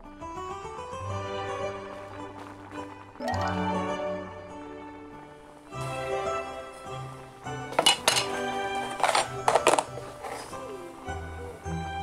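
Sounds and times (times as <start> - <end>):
background music: 0.0 - 12.0
utensils clinking against dishes: 7.6 - 11.6.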